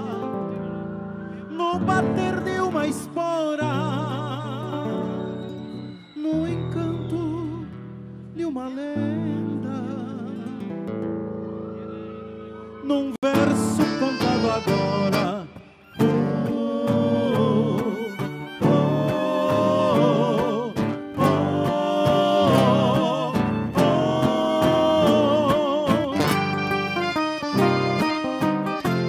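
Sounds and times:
strummed acoustic guitars: 13.3 - 29.0
accordion melody: 13.4 - 29.0.

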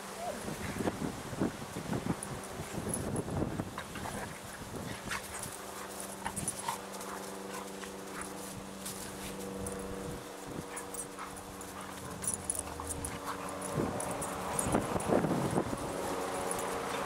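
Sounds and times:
steady low hum: 0.0 - 17.0
dogs scuffling on grass: 0.3 - 17.0
dogs panting: 3.7 - 9.8, 10.4 - 17.0.

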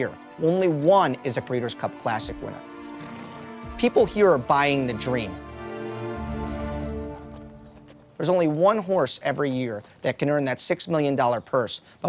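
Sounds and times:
held music chord: 0.0 - 8.2
hooves clip-clopping on pavement: 2.2 - 11.2.

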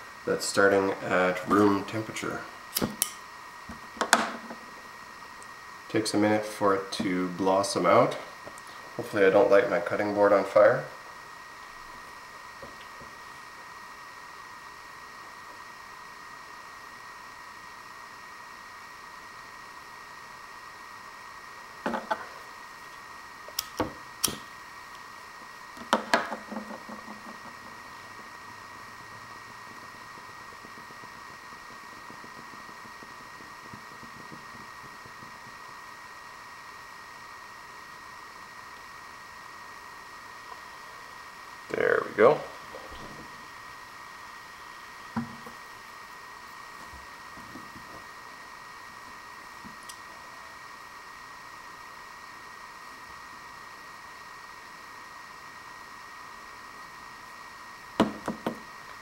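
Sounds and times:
faint hiss with high whine: 0.0 - 59.0.

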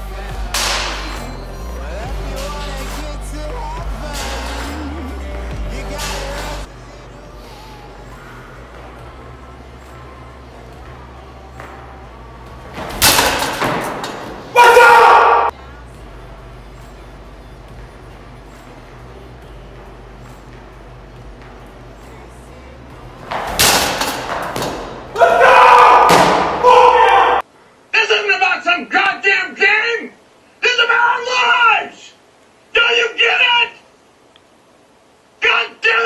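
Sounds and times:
steady low hum: 0.0 - 14.6, 15.5 - 25.2
baseball thumping into netting: 23.2 - 25.0, 26.0 - 26.6.

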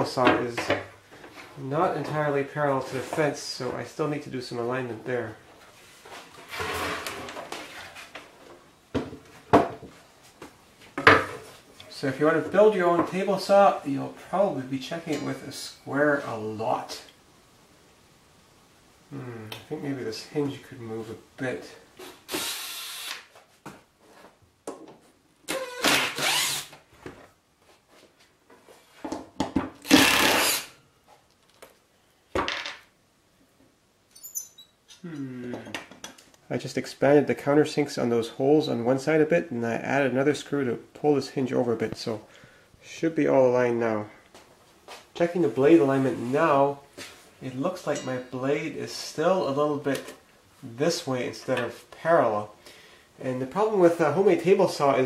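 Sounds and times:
plywood scraping over sawhorses: 5.7 - 8.2
impact driver bursts: 25.5 - 26.7, 29.8 - 30.8.

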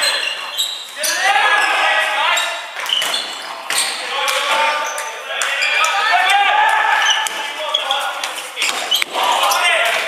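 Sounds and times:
players' voices calling out: 0.0 - 10.0.

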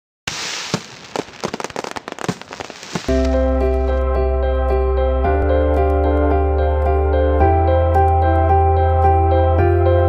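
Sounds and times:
fireworks crackling and popping: 0.2 - 4.1
music with held chords: 3.1 - 10.0.

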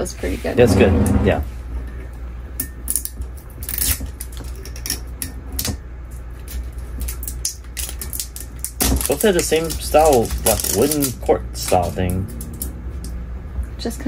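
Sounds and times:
plastic seal crinkling: 6.4 - 12.7.

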